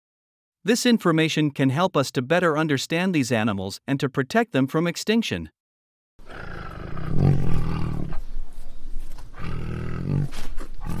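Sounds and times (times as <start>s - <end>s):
tiger roaring: 6.2s - 8.2s, 9.4s - 11.0s.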